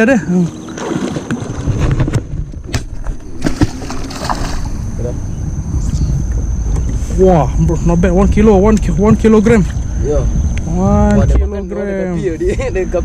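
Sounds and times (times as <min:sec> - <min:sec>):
high insect whine: 0:00.0 - 0:13.0
wind rumbling on microphone: 0:00.5 - 0:13.0
fish splashing at surface: 0:03.4 - 0:04.8.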